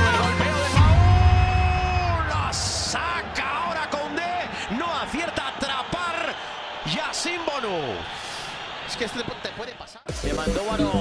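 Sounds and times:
stadium crowd calling out: 0.0s - 10.1s
music chord with heavy bass: 10.1s - 11.0s.

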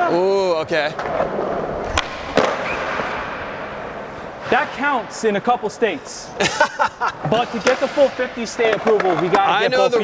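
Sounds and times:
skateboard wheels rolling on concrete: 0.6s - 6.4s, 7.2s - 10.0s
skateboard clack: 0.8s - 4.6s, 7.2s - 10.0s
skateboard wheels smacking floor: 1.9s - 3.2s.

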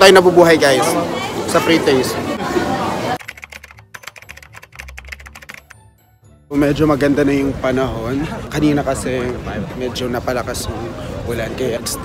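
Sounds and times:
crowd noise: 0.0s - 5.8s, 6.5s - 12.0s
rapid keyboard typing clicks: 3.2s - 5.8s.

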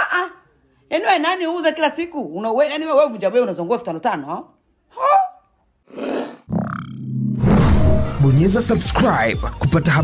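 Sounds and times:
outro music: 7.2s - 9.4s.

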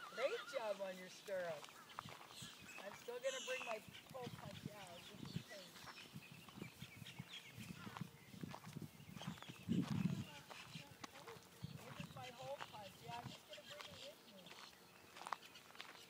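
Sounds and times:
horse hooves on grass and gravel: 0.0s - 16.0s
faint indistinct voices: 7.6s - 8.5s.

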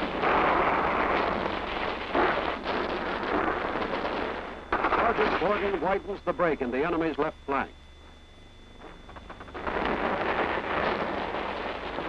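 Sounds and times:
crackling rumbling gunfire: 0.0s - 7.2s, 8.0s - 12.0s
faint low hum: 0.0s - 12.0s.

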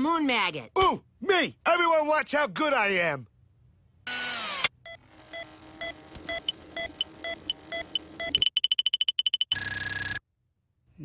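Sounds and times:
fast high beeps: 4.9s - 10.2s.

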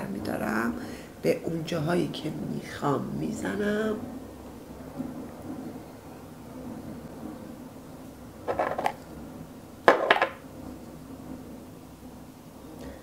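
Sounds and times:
small hard objects clattering: 8.5s - 9.0s, 9.9s - 10.4s.

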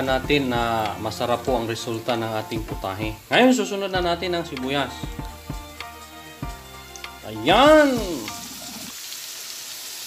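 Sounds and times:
onions sizzling in oil: 0.0s - 10.0s.

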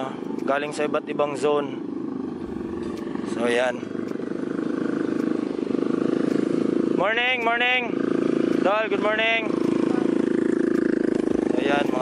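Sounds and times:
motor scooter engines droning: 0.0s - 12.0s.

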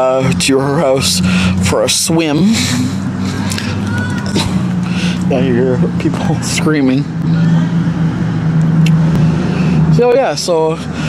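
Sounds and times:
low motor hum: 0.0s - 11.0s
distant people screaming: 3.6s - 4.5s, 7.2s - 8.4s.

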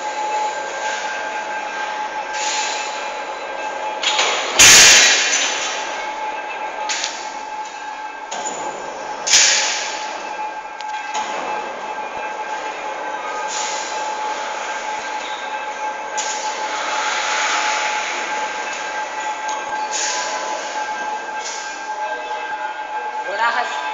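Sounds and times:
cable trolley wheels rolling with whine: 0.0s - 23.9s.

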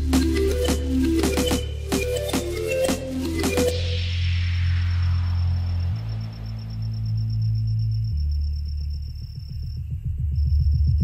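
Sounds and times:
fast ticking beat: 0.0s - 3.8s
steady high tone: 0.0s - 9.0s
low synth chords: 0.0s - 9.7s.

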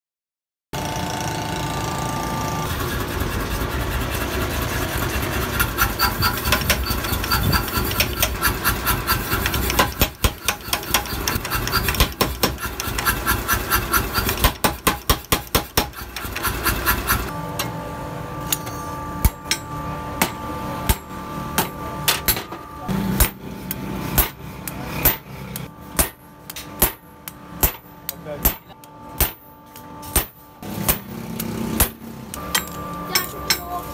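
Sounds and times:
power hammer pounding steel: 2.7s - 17.8s, 18.5s - 33.7s
hammer blows on forging tool: 4.9s - 33.9s.

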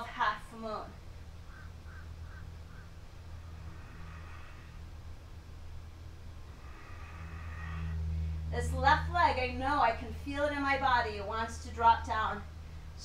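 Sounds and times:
steady low hum: 0.0s - 13.0s
faint bird-like calls: 1.4s - 5.3s, 6.4s - 8.5s.

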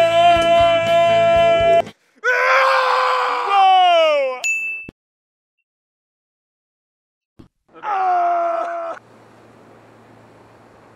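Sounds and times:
person screaming: 0.0s - 4.4s, 7.7s - 9.0s.

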